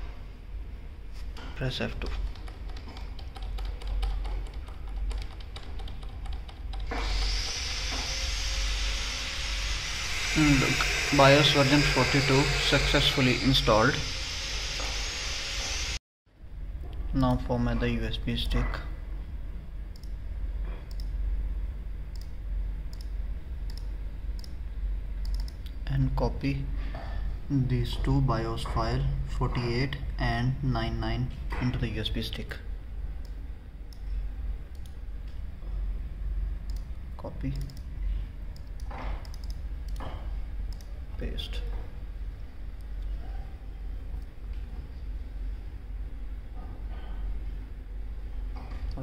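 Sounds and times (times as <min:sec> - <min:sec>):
steady low hum: 0:00.0 - 0:49.0
computer mouse clicking: 0:02.0 - 0:06.9, 0:20.9 - 0:21.1, 0:22.1 - 0:23.1, 0:23.7 - 0:24.6, 0:25.2 - 0:25.7, 0:34.7 - 0:35.0, 0:36.6 - 0:37.9, 0:38.6 - 0:40.0.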